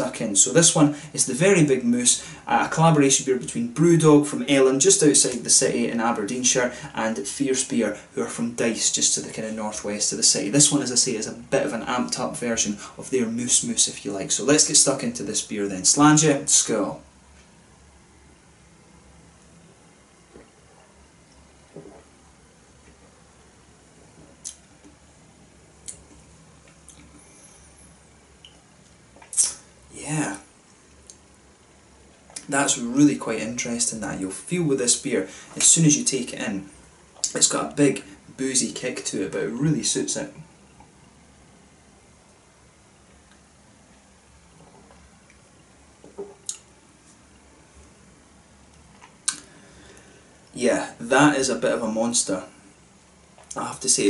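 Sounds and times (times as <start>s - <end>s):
low steady hum: 0.0s - 54.0s
man sipping and swallowing: 20.2s - 23.2s, 24.0s - 25.0s, 25.8s - 29.8s, 44.5s - 47.2s, 48.7s - 50.5s.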